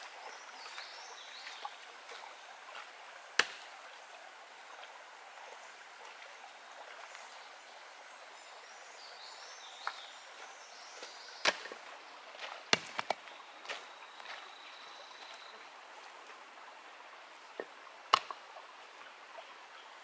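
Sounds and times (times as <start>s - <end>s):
creek trickling: 0.0s - 20.0s
stones clacking: 12.7s - 13.2s.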